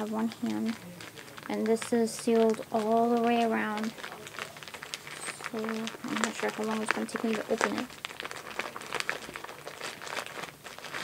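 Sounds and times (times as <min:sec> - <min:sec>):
mailer package crinkling: 0:00.0 - 0:11.0.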